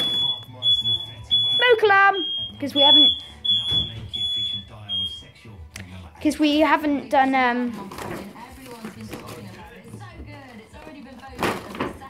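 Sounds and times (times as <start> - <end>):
smoke alarm beeping: 0.0 - 5.4.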